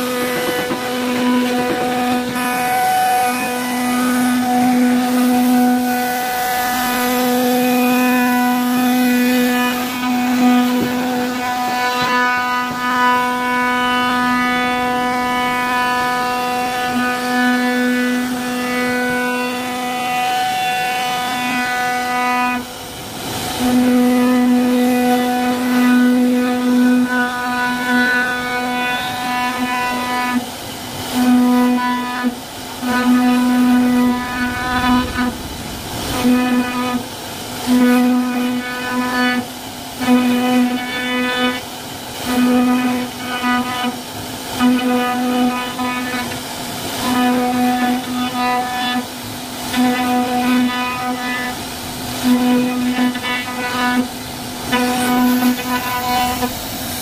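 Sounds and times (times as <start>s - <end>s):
router spindle whining through wood: 0.0s - 26.4s, 31.3s - 39.5s.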